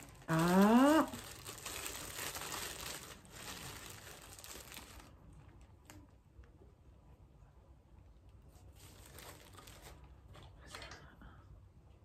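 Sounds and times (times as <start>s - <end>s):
plastic bag crinkling: 0.0s - 6.1s, 8.7s - 10.5s.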